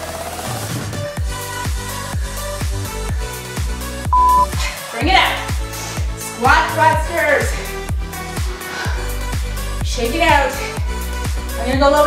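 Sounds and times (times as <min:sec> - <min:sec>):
electronic dance music: 0:04.2 - 0:04.5
high timer beep: 0:04.2 - 0:04.5.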